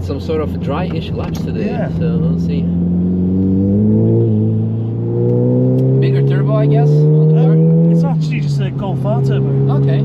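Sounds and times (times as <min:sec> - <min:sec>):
car engine accelerating: 0:00.0 - 0:10.0.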